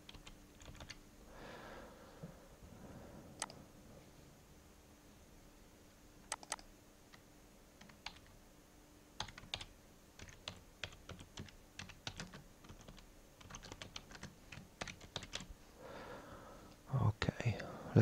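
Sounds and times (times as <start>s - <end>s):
computer keyboard typing: 0.0s - 1.0s, 3.4s - 3.6s, 6.3s - 7.2s, 7.8s - 8.4s, 9.2s - 15.5s
man speaking: 16.9s - 18.0s.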